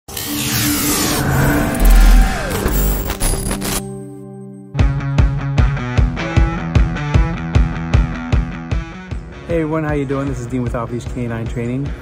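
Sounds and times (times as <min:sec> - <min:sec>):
low synth tones: 0:00.7 - 0:04.1.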